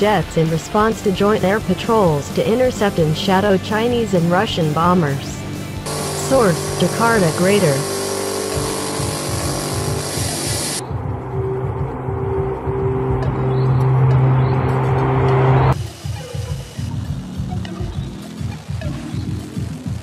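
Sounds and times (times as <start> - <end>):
propeller aircraft engines droning: 0.0 - 15.8
electronic background music: 0.0 - 20.0.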